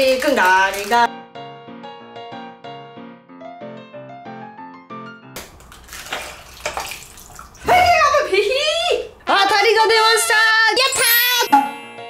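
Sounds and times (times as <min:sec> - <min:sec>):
slush splashing into plastic tub: 0:00.0 - 0:01.1, 0:05.4 - 0:08.4
background piano music: 0:00.0 - 0:08.3, 0:09.7 - 0:12.0.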